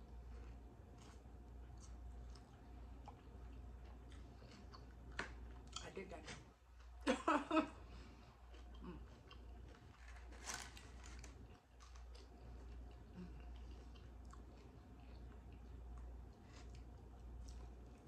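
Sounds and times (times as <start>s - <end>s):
low steady hum: 0.0s - 18.0s
chewing and mouth sounds: 1.0s - 5.9s, 8.2s - 18.0s.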